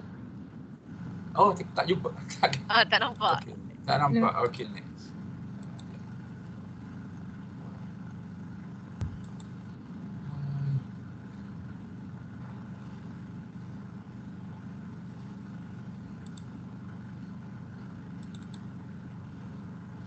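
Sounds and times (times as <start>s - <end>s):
low room hum: 0.0s - 20.0s
sharp click: 18.2s - 18.6s.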